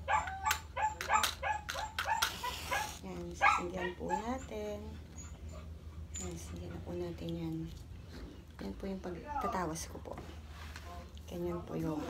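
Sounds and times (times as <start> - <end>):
dog barking: 0.0 - 4.4.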